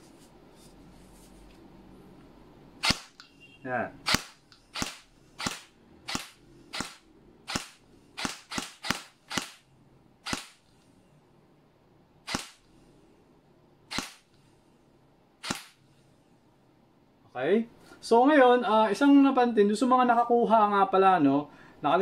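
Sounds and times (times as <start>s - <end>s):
airsoft gun firing single shots: 2.8s - 3.2s, 4.0s - 9.6s, 10.2s - 10.6s, 12.2s - 12.6s, 13.9s - 14.3s, 15.4s - 15.8s.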